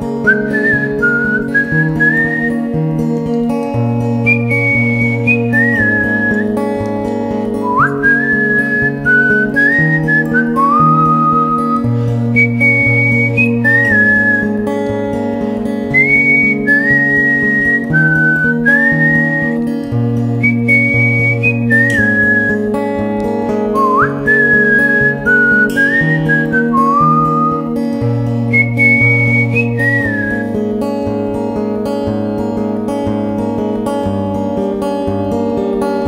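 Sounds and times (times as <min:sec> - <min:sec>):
acoustic guitar chords: 0:00.0 - 0:36.0
whistled melody: 0:00.2 - 0:02.8, 0:04.2 - 0:06.6, 0:07.6 - 0:14.7, 0:15.9 - 0:19.7, 0:20.4 - 0:22.8, 0:23.7 - 0:27.8, 0:28.5 - 0:30.6.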